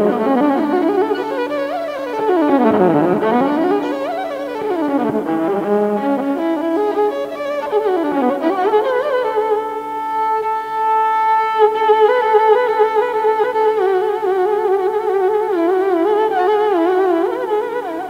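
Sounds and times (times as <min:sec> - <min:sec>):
solo violin with sliding glides: 0:00.0 - 0:18.0.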